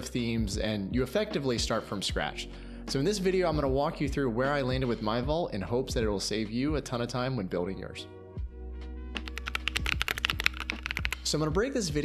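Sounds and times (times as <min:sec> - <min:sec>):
computer keyboard typing: 0:09.2 - 0:11.3.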